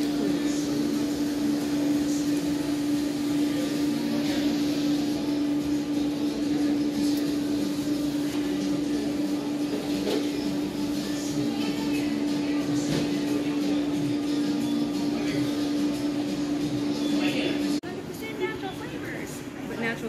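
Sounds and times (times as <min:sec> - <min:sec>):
faint indistinct voices: 0:00.0 - 0:20.0
low machine hum: 0:00.0 - 0:20.0.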